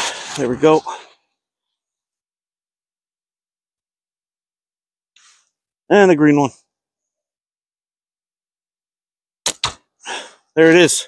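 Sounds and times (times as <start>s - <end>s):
slingshot bands snapping: 9.5s - 9.8s.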